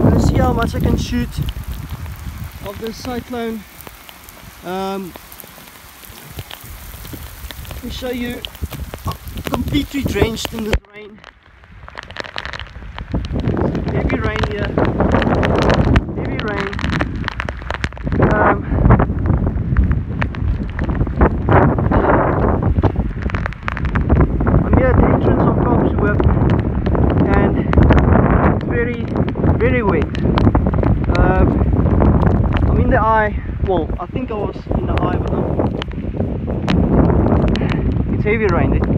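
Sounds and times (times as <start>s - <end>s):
man talking indistinctly: 0.0s - 1.5s, 2.6s - 3.7s, 4.6s - 5.2s, 7.8s - 11.2s, 13.7s - 14.8s, 16.0s - 17.0s, 18.2s - 18.8s, 24.6s - 26.3s, 27.2s - 27.7s, 28.6s - 30.2s, 31.0s - 31.7s, 32.6s - 35.6s, 37.6s - 38.9s
gusty wind buffeting microphone: 0.0s - 38.9s.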